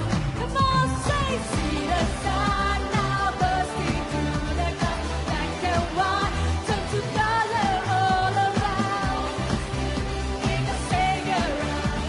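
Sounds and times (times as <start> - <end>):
pop band playing: 0.0 - 12.0
woman singing: 0.0 - 12.0.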